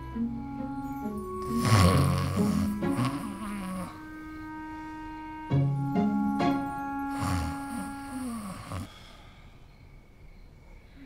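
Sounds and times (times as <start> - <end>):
soft background music: 0.0 - 8.9
person snoring: 1.4 - 4.0, 7.1 - 9.1.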